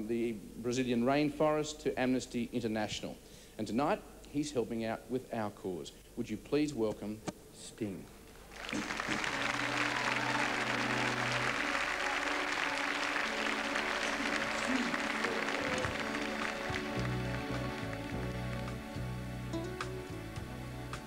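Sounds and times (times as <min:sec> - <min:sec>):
audience applauding: 0:08.4 - 0:19.1
band holding sustained notes: 0:08.8 - 0:21.0
low bass guitar notes: 0:14.6 - 0:21.0.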